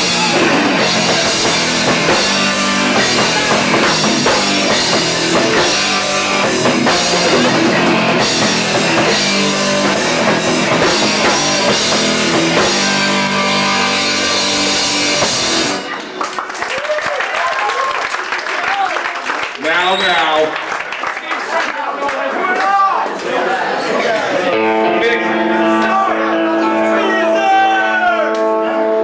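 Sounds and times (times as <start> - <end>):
crowd shouting: 0.0 - 12.4, 22.1 - 29.0
punk band playing live: 0.0 - 16.6, 24.2 - 29.0.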